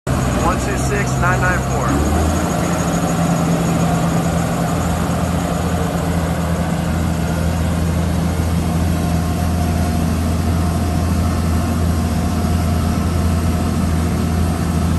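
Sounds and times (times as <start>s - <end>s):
tractor diesel engine running: 0.1s - 14.9s.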